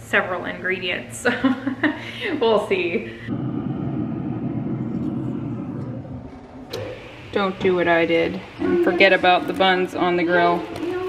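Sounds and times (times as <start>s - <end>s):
steady low rumble: 2.9s - 10.1s.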